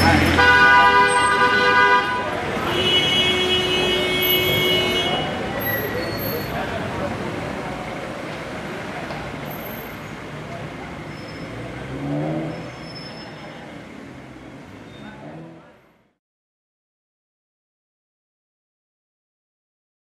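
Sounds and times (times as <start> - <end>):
car horns honking: 0.0 - 6.6
rumble of cars: 0.0 - 16.2.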